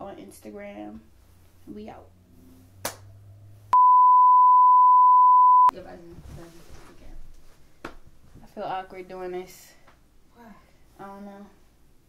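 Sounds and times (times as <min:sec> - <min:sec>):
steady pure test tone: 0:03.7 - 0:05.7.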